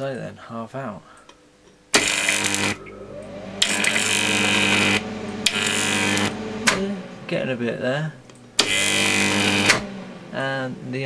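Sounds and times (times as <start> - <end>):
electric arc buzzing: 3.6 - 9.6.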